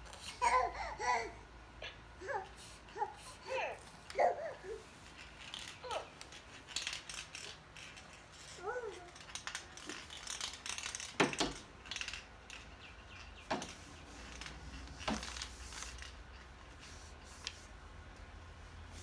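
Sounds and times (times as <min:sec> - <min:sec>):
baby babbling: 0:00.2 - 0:04.9, 0:08.6 - 0:09.2
plastic toys clicking and rattling: 0:02.9 - 0:16.6.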